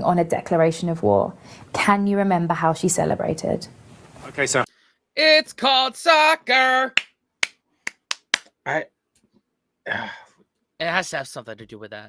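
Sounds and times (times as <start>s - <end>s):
man speaking: 4.2s - 7.0s, 8.6s - 8.9s, 10.8s - 12.0s.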